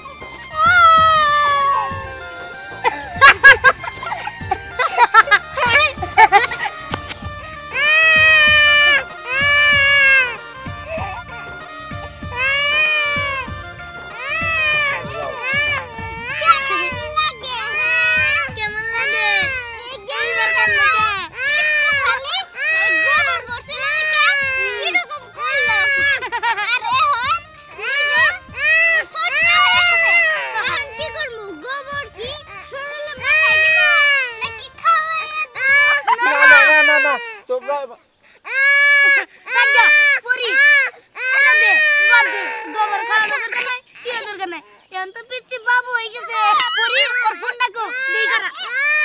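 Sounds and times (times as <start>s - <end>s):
toddler crying: 0.0s - 44.4s, 46.4s - 49.0s.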